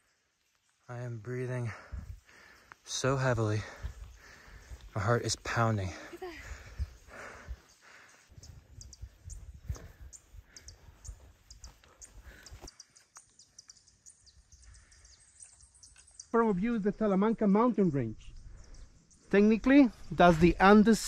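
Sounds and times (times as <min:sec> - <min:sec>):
small birds chirping: 0:00.0 - 0:21.0
person breathing heavily: 0:01.6 - 0:02.9, 0:03.5 - 0:08.6, 0:09.6 - 0:12.7
wind rumble on microphone: 0:08.3 - 0:11.3.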